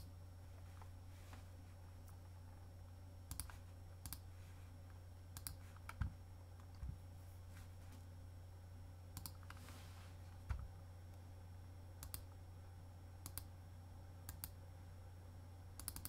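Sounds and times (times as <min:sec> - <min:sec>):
low steady hum: 0:00.0 - 0:16.0
computer mouse clicks: 0:03.3 - 0:04.2, 0:05.4 - 0:06.8, 0:09.2 - 0:09.6, 0:12.0 - 0:12.3, 0:13.2 - 0:13.5, 0:14.3 - 0:14.6, 0:15.8 - 0:16.0.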